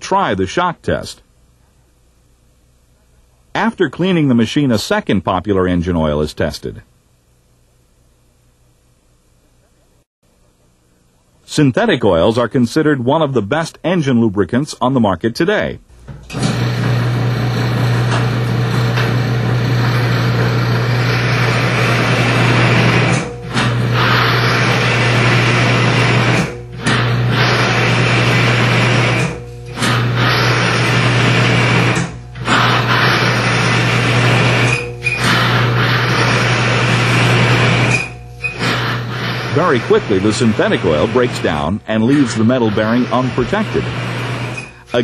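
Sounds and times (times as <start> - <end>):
bearing grinding: 16.3 - 45.0
electric motor humming: 16.3 - 45.0.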